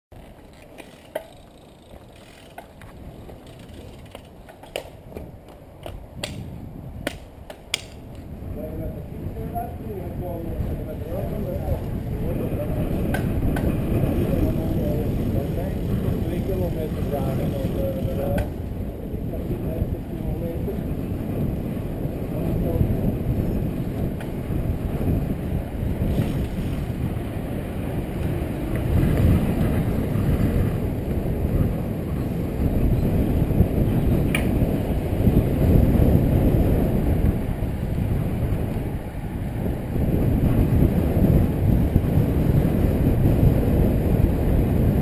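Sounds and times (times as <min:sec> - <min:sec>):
bike clicks and rattles: 0:00.1 - 0:08.4, 0:12.6 - 0:18.7, 0:23.9 - 0:25.1, 0:26.0 - 0:27.3, 0:33.2 - 0:35.2
wind and road rumble: 0:00.1 - 0:45.0.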